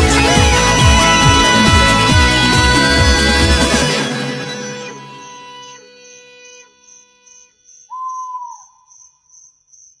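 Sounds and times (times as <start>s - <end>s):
held synth notes: 0.0s - 7.6s
whistle-like tone bending down: 4.1s - 8.9s.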